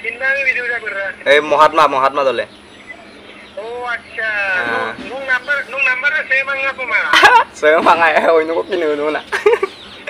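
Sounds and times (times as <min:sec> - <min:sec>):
man laughing heartily: 0:07.1 - 0:07.6, 0:09.3 - 0:09.8.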